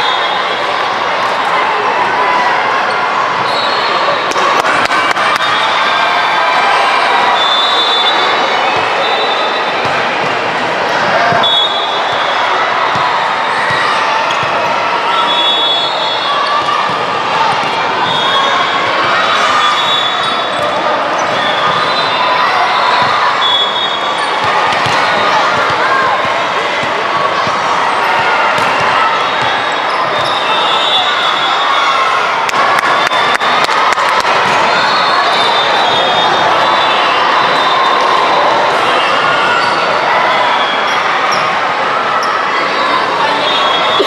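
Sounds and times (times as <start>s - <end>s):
crowd chatter and shouting: 0.0s - 44.0s
volleyball being struck: 28.6s - 28.8s.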